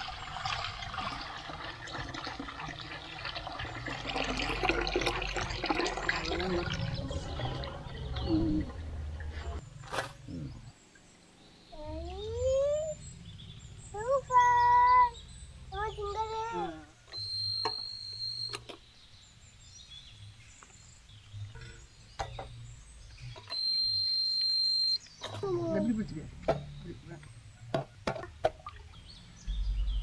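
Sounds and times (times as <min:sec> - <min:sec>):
juice pouring through strainer: 0:00.0 - 0:08.1
voices: 0:11.8 - 0:13.0, 0:13.9 - 0:17.0, 0:25.2 - 0:27.4.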